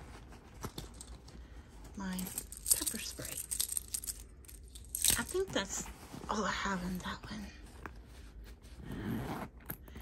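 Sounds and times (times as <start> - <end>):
rummaging in a handbag pocket: 0.0 - 10.0.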